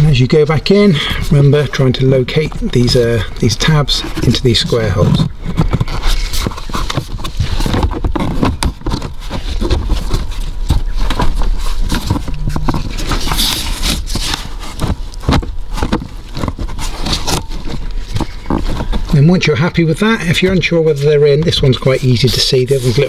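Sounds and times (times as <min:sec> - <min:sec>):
plastic trim panel knocking and scraping: 0:04.1 - 0:19.1.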